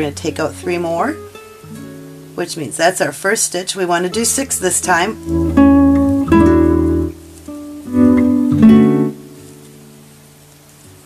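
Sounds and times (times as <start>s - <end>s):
acoustic guitar strummed chords: 0.0s - 10.3s.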